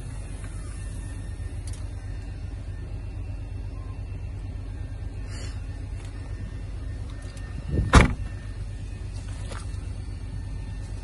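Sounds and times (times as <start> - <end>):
car tailgate slamming shut: 7.8 - 8.4.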